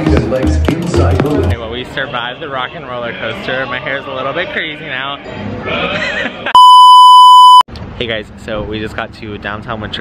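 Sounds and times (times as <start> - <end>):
censor bleep: 6.6 - 7.7.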